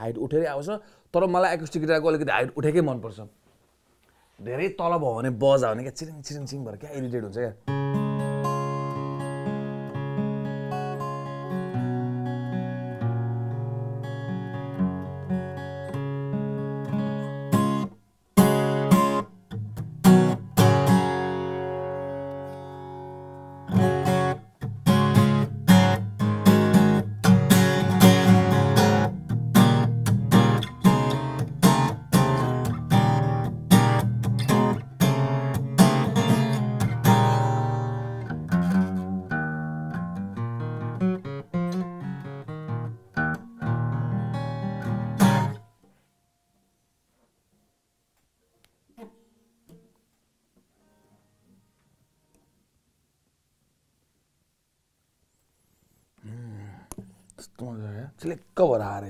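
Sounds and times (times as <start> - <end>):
acoustic guitar strumming and picking: 7.6 - 45.9.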